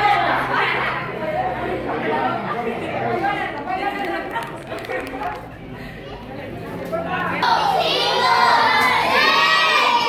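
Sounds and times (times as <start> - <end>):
children shouting together: 7.4 - 10.0.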